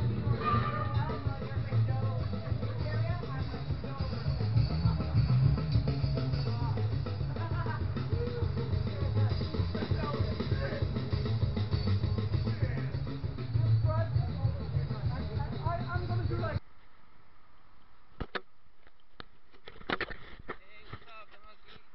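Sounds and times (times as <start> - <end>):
drum kit beat: 0.0 - 16.6.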